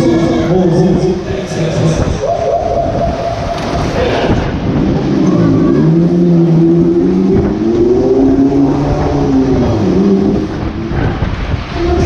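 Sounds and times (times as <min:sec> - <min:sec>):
fairground ride cars rumbling: 0:00.0 - 0:12.0
sustained droning tone: 0:04.6 - 0:12.0.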